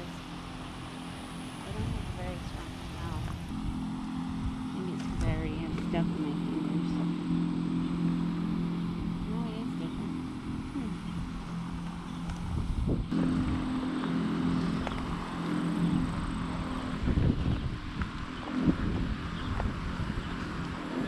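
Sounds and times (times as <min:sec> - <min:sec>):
motor humming: 0:00.0 - 0:21.0.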